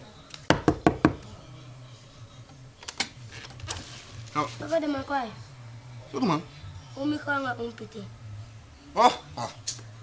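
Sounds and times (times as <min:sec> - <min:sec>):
knocks on wooden door: 0:00.5 - 0:01.2.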